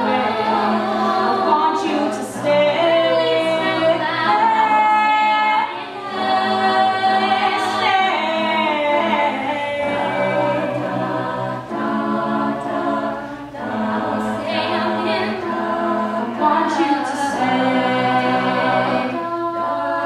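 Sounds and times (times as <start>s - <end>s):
woman singing lead: 0.0s - 10.9s, 12.6s - 20.0s
backing voices singing chords: 0.0s - 20.0s.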